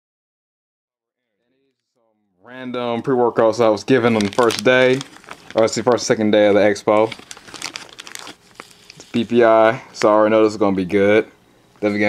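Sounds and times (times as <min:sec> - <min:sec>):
plastic bags crinkling: 0:03.0 - 0:10.2.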